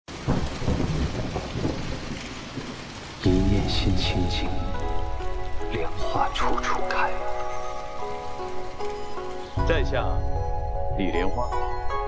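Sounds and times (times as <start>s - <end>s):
low thunder rumbling: 0.1s - 12.0s
rain falling: 0.1s - 12.0s.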